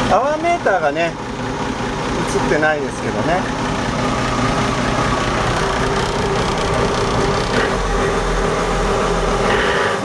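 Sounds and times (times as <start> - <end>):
diesel engine idling with whine: 0.0 - 10.0.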